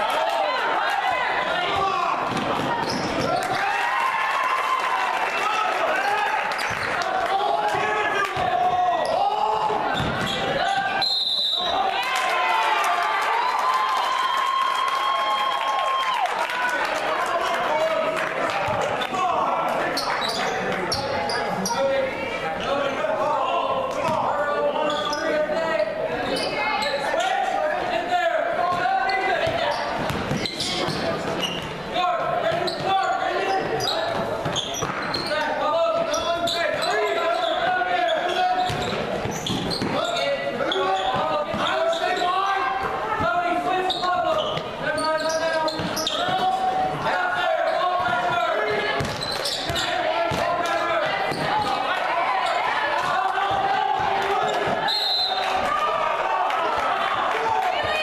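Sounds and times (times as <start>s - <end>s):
crowd voices and shouting: 0.0s - 58.0s.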